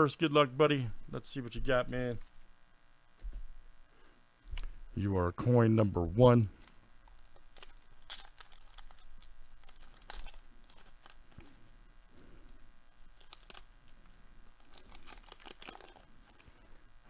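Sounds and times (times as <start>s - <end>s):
small crackles: 6.5s - 17.0s
wrapper crinkling and tearing: 6.6s - 11.7s, 12.5s - 16.6s.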